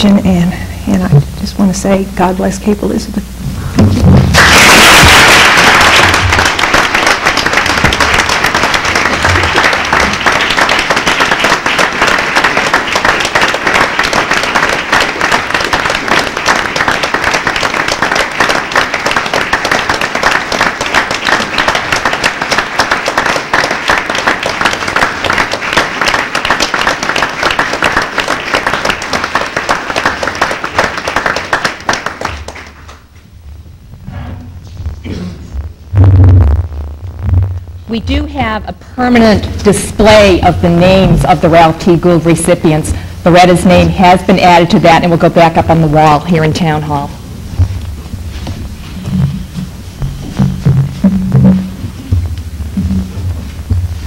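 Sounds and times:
crowd applauding: 4.0s - 33.1s.

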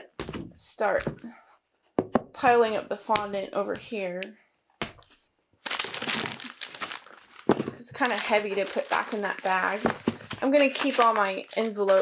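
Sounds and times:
canvas bag rustling and crinkling: 5.7s - 12.0s.

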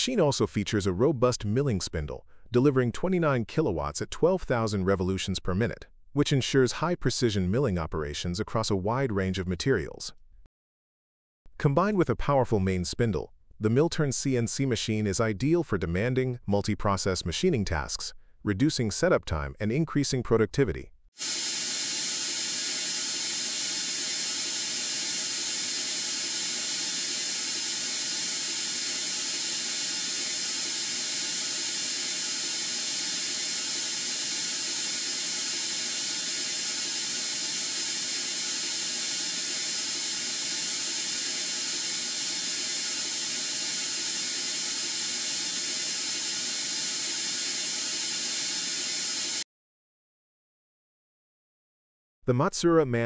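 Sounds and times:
coolant spraying hiss: 21.2s - 49.4s.

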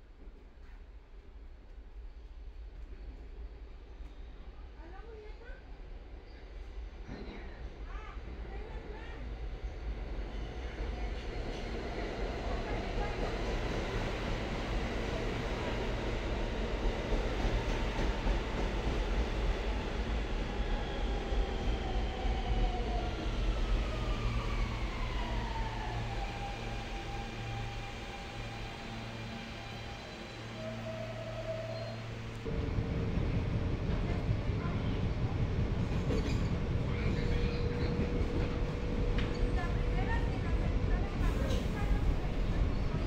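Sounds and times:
train wheels rumbling on rails: 9.9s - 43.0s
train brakes whining: 17.1s - 32.5s.

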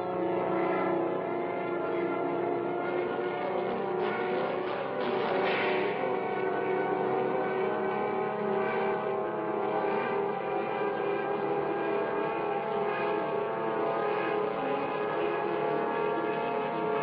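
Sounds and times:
airplane engine drone: 0.0s - 17.0s.

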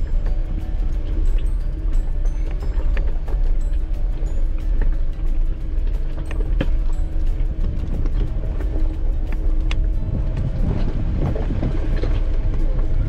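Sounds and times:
low engine rumble: 0.0s - 13.0s.

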